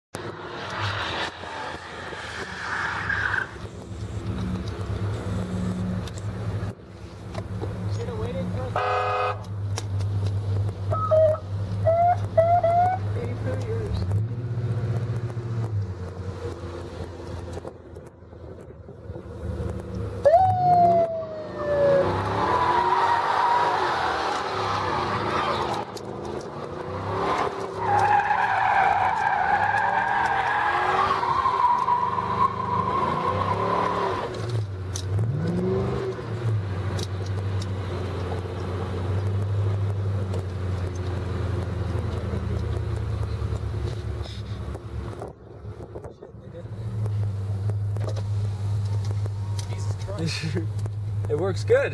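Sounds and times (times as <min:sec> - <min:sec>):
engines revving: 0:00.2 - 0:51.9
tyres squealing: 0:27.4 - 0:34.3.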